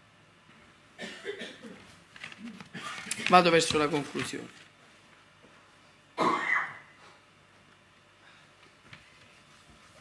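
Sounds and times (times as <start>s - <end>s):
man coughing: 1.0s - 1.8s, 6.2s - 6.9s.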